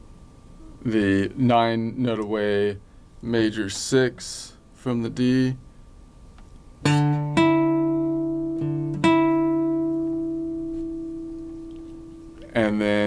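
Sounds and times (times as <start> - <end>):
acoustic guitar notes picked: 6.8 - 13.0.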